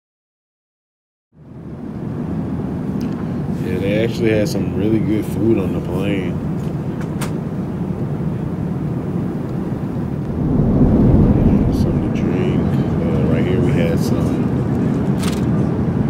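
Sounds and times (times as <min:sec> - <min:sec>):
airplane cabin rumble in flight: 0:09.1 - 0:14.0.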